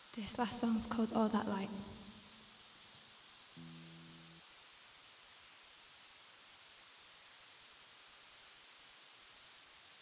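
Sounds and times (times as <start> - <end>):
faint held instrument note: 3.6 - 4.4.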